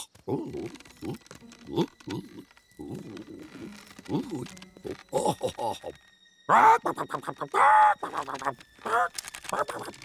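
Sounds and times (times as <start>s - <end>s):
light clicks and scratchy noises: 0.2s - 5.6s.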